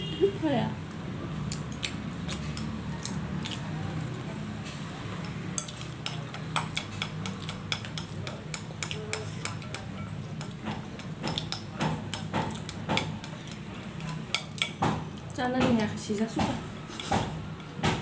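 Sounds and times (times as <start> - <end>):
chopsticks clicking against bowls: 1.5 - 3.7, 5.2 - 15.9.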